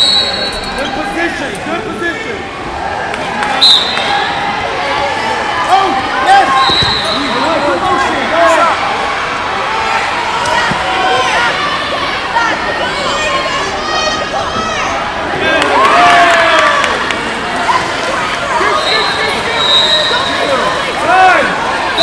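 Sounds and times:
voices calling and shouting: 0:00.0 - 0:22.0.

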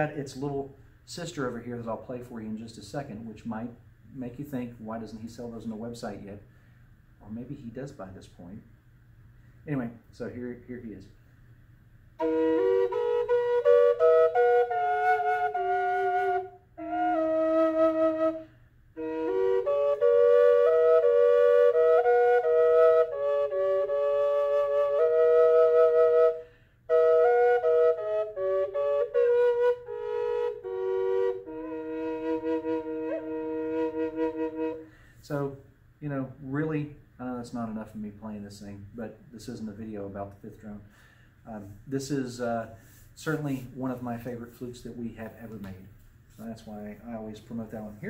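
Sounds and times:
double flute drone and melody: 0:12.2 - 0:35.0.

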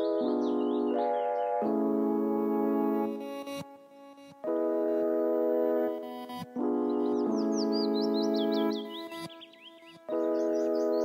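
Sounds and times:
ambient music of sustained chords: 0:00.0 - 0:11.0
bird-like chirps: 0:06.9 - 0:11.0.

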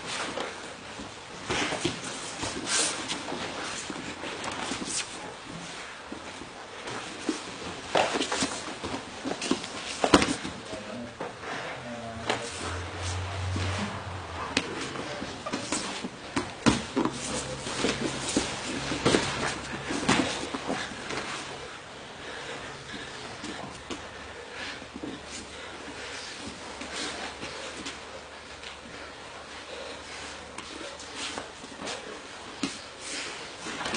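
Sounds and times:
bodies scuffing on a mat: 0:00.1 - 0:10.7, 0:12.2 - 0:22.4.

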